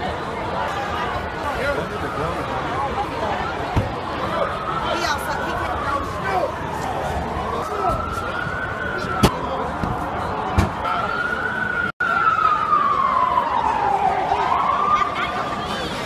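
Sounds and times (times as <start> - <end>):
crowd voices: 0.0 - 16.0
emergency siren wailing: 0.9 - 16.0.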